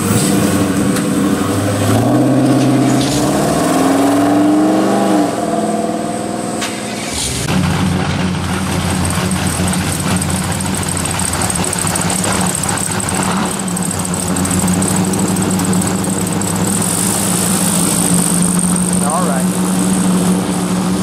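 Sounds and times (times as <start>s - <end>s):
car engines running at low revs: 0.0s - 21.0s.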